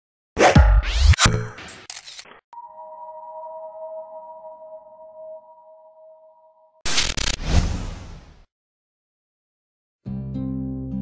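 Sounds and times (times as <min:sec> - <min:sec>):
ringing tone of several pitches: 0:02.6 - 0:06.8.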